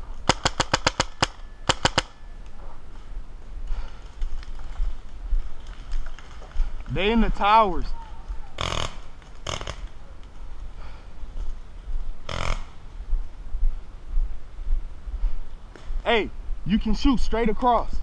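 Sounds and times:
paintball marker shots: 0:00.2 - 0:02.2
low rumble on microphone: 0:08.0 - 0:16.7.

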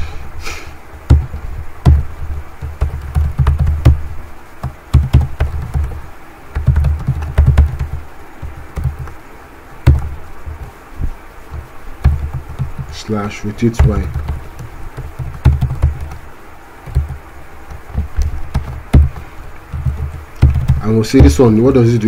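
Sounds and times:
computer keyboard typing: 0:01.1 - 0:10.8, 0:11.5 - 0:21.6.

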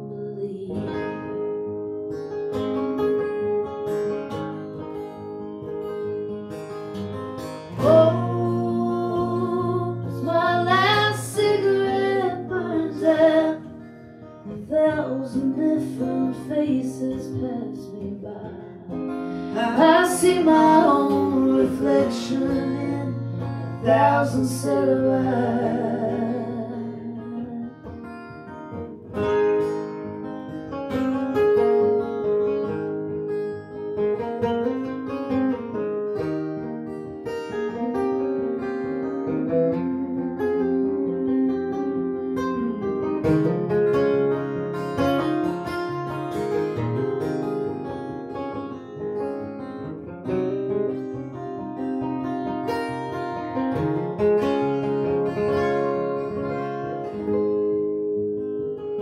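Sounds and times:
acoustic guitars playing: 0:00.0 - 0:59.0.

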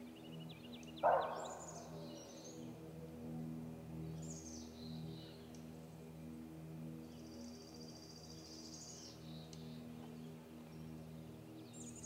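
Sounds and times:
steady low hum: 0:00.0 - 0:12.0
high descending bird calls: 0:01.0 - 0:02.4.

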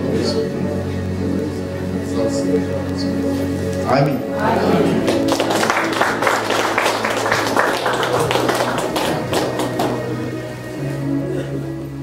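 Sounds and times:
crowd clapping: 0:04.8 - 0:10.4.

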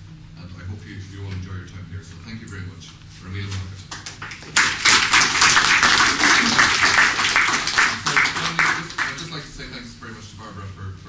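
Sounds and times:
audience applauding: 0:03.9 - 0:09.5.

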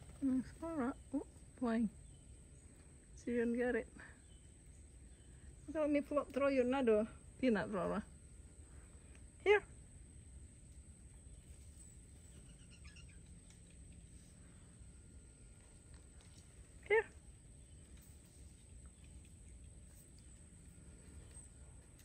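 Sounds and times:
woman calling: 0:16.8 - 0:17.2.

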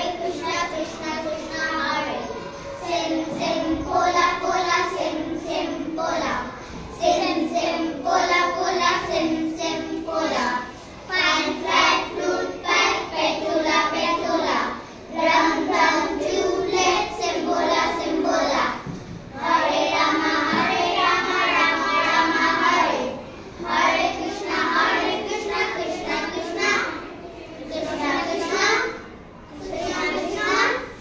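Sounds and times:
young children singing: 0:00.0 - 0:31.0.

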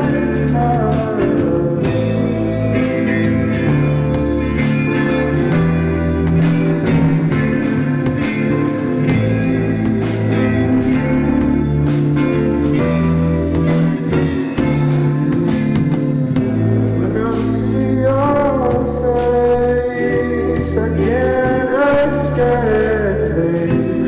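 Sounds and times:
bass guitar: 0:00.0 - 0:24.0
drum kit: 0:00.0 - 0:24.0
electric guitar: 0:00.0 - 0:24.0
keyboard: 0:00.0 - 0:24.0.

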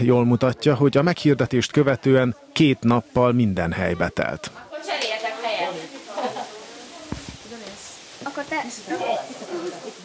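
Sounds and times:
faint room hiss: 0:00.3 - 0:10.0.

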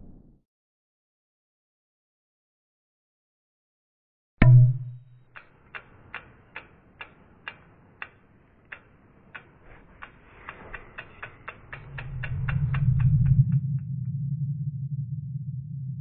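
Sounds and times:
low hum: 0:04.4 - 0:16.0
sharp ticks: 0:04.5 - 0:13.9.

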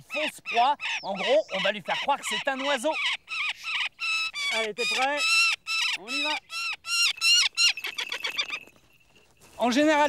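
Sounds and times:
falcon chattering: 0:00.0 - 0:08.8.

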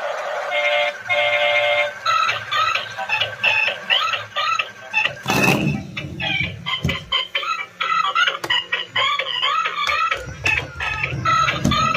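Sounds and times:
toy car electronic tune: 0:00.0 - 0:11.9.

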